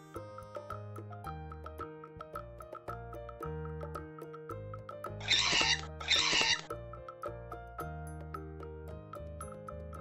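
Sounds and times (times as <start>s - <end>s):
light plucked music: 0.0s - 10.0s
harsh pterodactyl screech: 5.2s - 6.7s.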